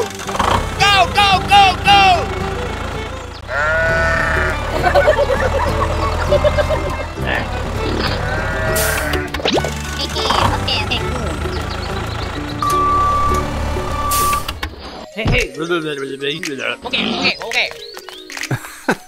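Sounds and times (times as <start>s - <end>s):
background music: 0.0s - 19.0s
wavering sheep bleat: 3.4s - 4.6s, 8.0s - 9.1s.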